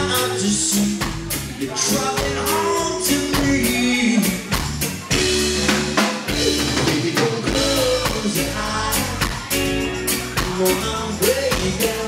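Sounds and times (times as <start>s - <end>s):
bass guitar: 0.0s - 12.0s
drum kit steady beat: 0.0s - 12.0s
electric guitar: 0.0s - 12.0s.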